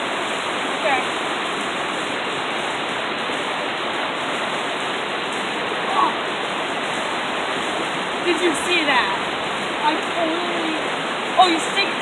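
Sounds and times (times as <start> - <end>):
creek water rushing over rocks: 0.0 - 12.0.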